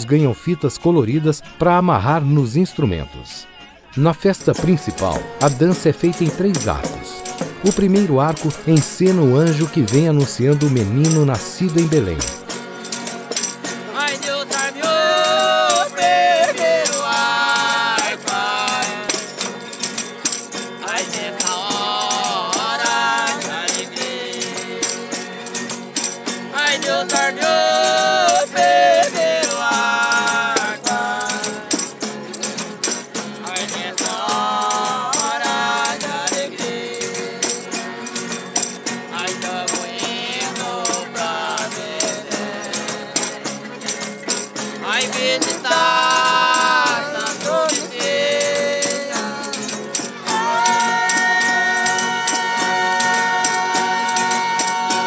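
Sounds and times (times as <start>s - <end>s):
accordion: 0.0s - 55.0s
acoustic guitar: 0.0s - 55.0s
rattling percussion beat: 0.0s - 55.0s
group singing: 13.9s - 19.4s, 20.8s - 25.1s, 26.5s - 31.8s, 33.5s - 38.2s, 39.1s - 44.0s, 44.8s - 55.0s.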